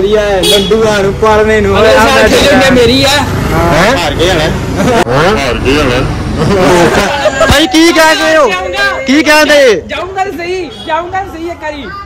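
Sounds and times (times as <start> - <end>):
young men talking loudly: 0.0 - 12.0
men laughing: 4.6 - 5.5, 6.2 - 8.6.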